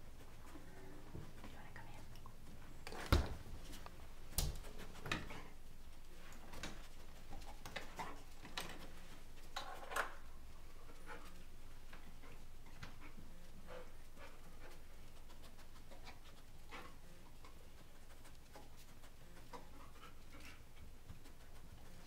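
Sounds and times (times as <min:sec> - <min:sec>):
dog panting: 0:10.6 - 0:22.0.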